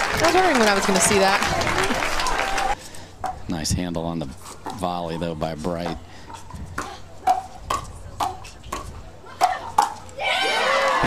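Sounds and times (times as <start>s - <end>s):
paddles hitting plastic ball: 4.6s - 10.2s.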